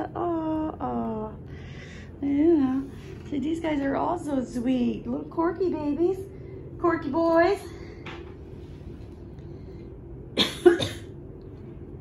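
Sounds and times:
person coughing: 0:10.4 - 0:11.2.

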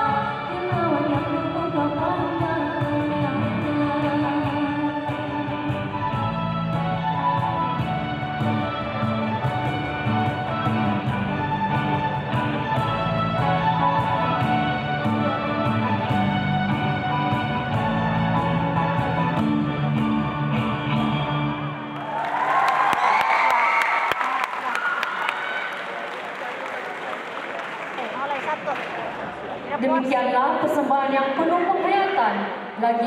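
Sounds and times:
live band playing dance music: 0:04.5 - 0:21.6.

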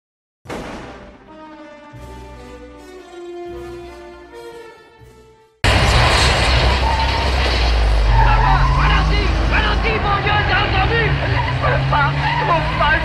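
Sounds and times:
car engines droning: 0:05.6 - 0:13.0.

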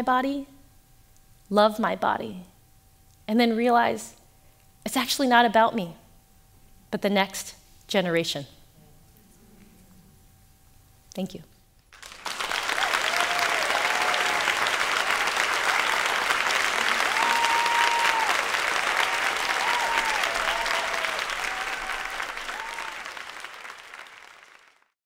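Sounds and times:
audience applauding: 0:11.9 - 0:25.0
cheers and whoops: 0:12.5 - 0:24.1.

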